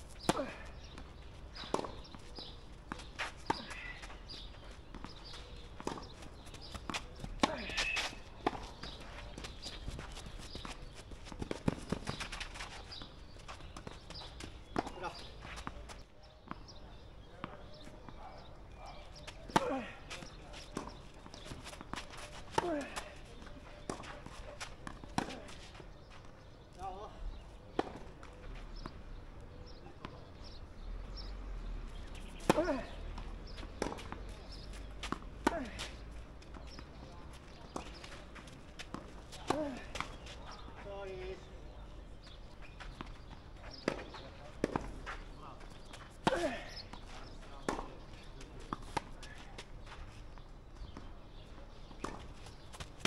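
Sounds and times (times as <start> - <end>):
tennis ball hit with rackets: 43.8 - 44.9, 46.2 - 48.1.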